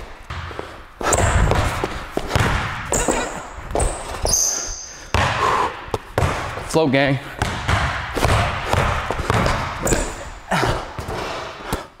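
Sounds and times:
basketball bouncing on hardwood floor: 0:00.2 - 0:10.3.

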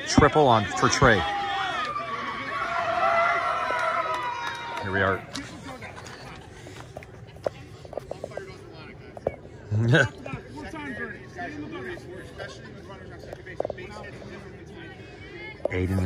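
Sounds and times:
background chatter: 0:00.0 - 0:16.0.

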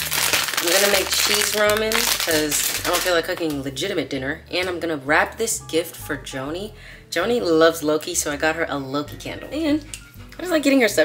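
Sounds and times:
plastic bag crinkling: 0:00.0 - 0:03.6
woman speaking: 0:00.6 - 0:11.0.

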